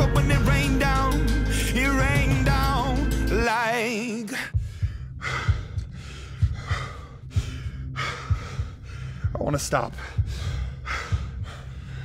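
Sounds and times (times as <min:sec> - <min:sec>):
man breathing hard: 0:04.3 - 0:12.0.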